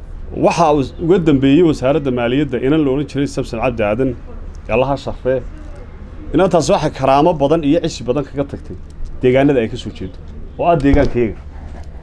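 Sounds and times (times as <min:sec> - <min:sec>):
man talking: 0:00.3 - 0:05.5, 0:06.3 - 0:11.4.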